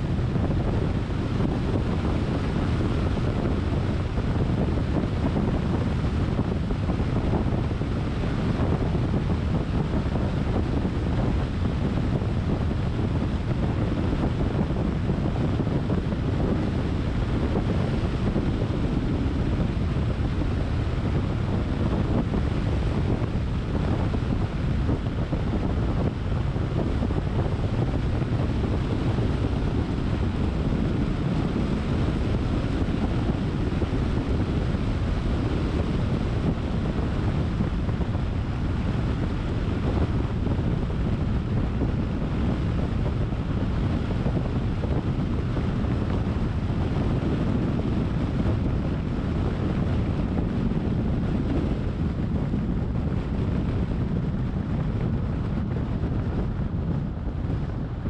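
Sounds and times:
wind rush on microphone: 0.0s - 58.0s.

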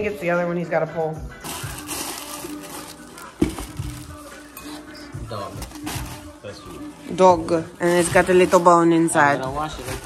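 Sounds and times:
soft background music: 0.0s - 10.0s
tissue paper rustling: 1.4s - 4.8s, 5.6s - 7.1s, 7.7s - 10.0s.

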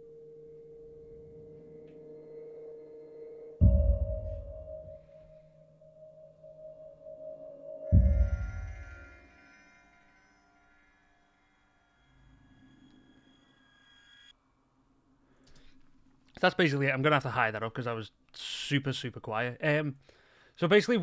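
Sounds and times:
faint low drone: 0.0s - 13.9s
steady pitched drone: 0.0s - 14.3s
higher ringing tones: 0.0s - 14.4s
deep muffled kick: 3.6s - 5.0s, 7.9s - 9.0s.

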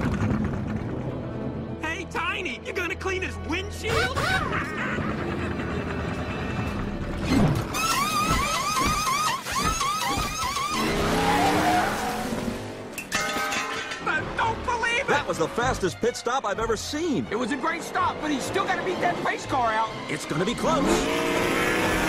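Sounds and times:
music: 0.4s - 10.8s, 12.9s - 22.0s
air gun whines: 7.7s - 11.2s
race car pulling away: 17.4s - 22.0s.

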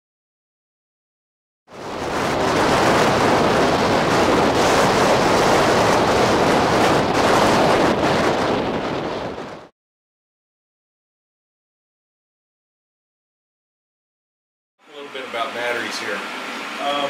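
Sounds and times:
strong wind on microphone: 1.7s - 9.7s, 15.2s - 17.0s.

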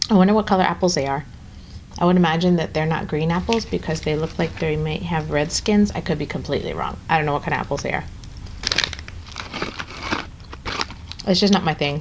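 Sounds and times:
dried apple rings crunching: 8.2s - 11.5s.

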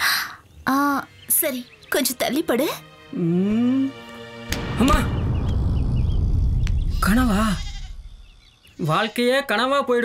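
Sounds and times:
loud rumbling: 4.5s - 8.6s.

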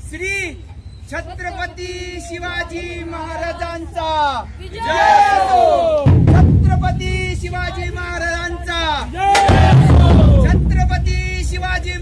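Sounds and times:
people shouting: 2.2s - 10.6s
dhol and tasha drumming: 6.0s - 12.0s.

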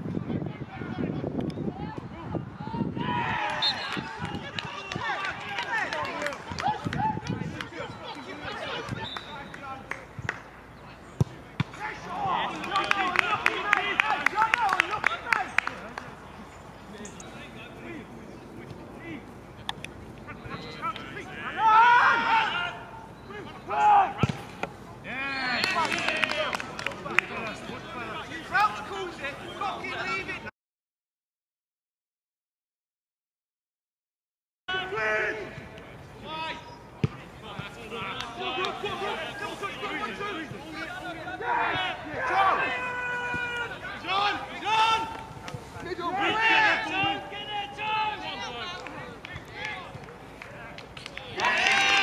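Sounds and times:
men shouting and calling out: 1.8s - 9.9s, 11.6s - 19.4s, 20.2s - 30.5s, 34.7s - 52.0s
ball being kicked: 24.2s - 24.7s.

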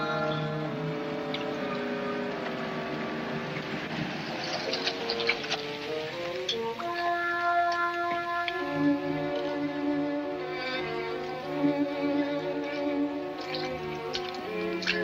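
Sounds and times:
orchestral music with sustained strings: 0.0s - 15.0s.

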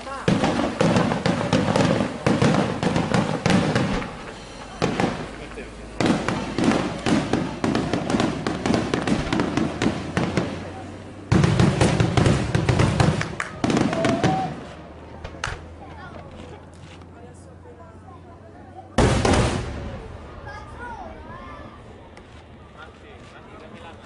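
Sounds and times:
fireworks bangs and crackling: 0.0s - 15.8s, 19.0s - 24.0s.

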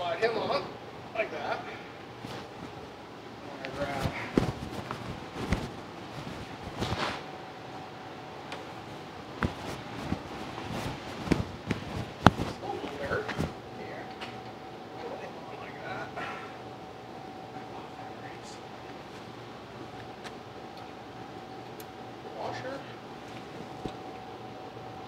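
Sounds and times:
faint steady hum: 0.0s - 25.0s.

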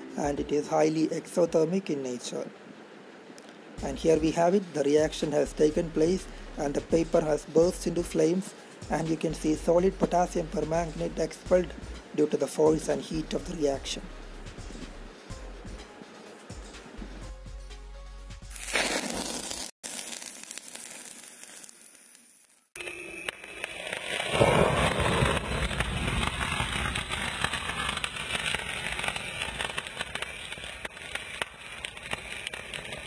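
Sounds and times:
crackling chemical fire flare-up: 0.0s - 17.3s, 18.5s - 33.0s
thunder rumble with crackle: 23.7s - 33.0s.

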